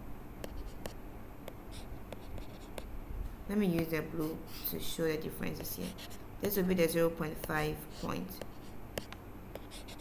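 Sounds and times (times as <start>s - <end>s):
stylus scratching while writing: 0.4s - 1.0s, 1.7s - 2.9s, 3.8s - 6.2s, 7.2s - 10.0s.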